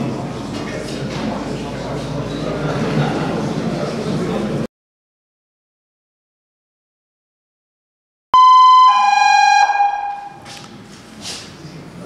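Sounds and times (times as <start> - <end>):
fire engine horn two-note chord: 8.4 - 10.5.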